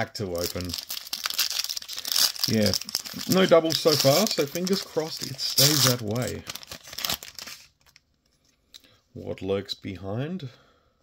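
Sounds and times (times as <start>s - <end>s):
foil wrapper crinkling and tearing: 0.2s - 8.0s.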